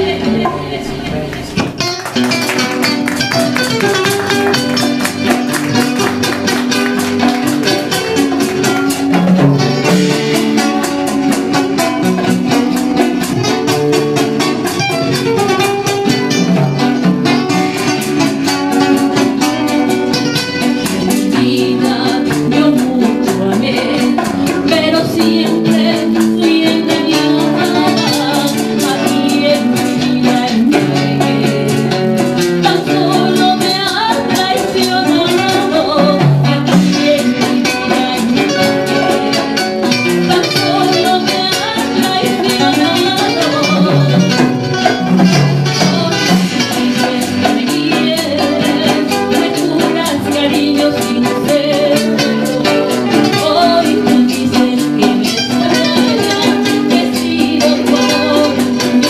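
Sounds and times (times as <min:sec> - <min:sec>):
woman singing: 0:00.0 - 0:02.0, 0:02.6 - 0:59.0
guitars and percussion: 0:00.0 - 0:59.0.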